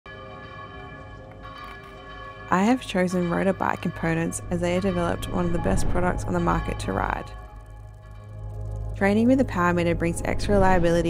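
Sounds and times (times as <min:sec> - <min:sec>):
bell-like ringing chord: 0:00.1 - 0:11.0.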